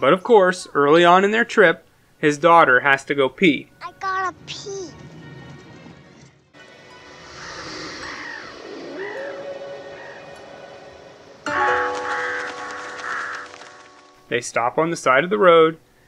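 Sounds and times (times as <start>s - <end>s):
quiet outdoor ambience: 0.0s - 3.8s, 5.1s - 16.0s
bird calls: 7.2s - 14.1s.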